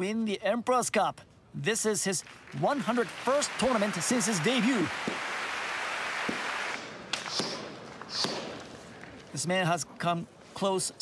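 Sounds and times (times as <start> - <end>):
large arena crowd noise: 2.5 - 7.0.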